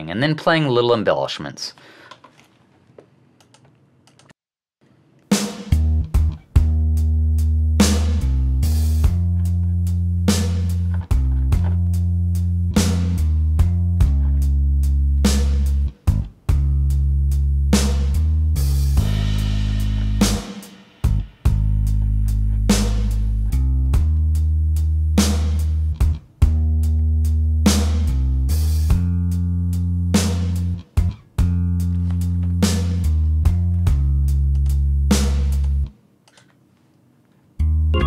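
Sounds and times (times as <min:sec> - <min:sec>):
drum kit: 0:05.3 - 0:35.8
electric bass: 0:05.7 - 0:20.5, 0:21.1 - 0:35.9.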